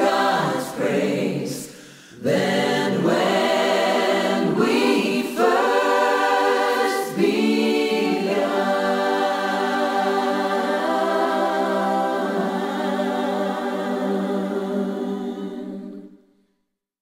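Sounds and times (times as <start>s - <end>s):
choir singing: 0.0s - 16.3s.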